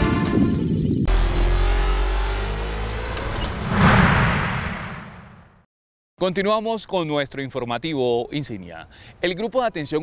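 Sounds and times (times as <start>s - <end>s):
rising tone: 1.1s - 5.6s
whoosh: 3.0s - 5.7s
deep rumble: 3.2s - 5.6s.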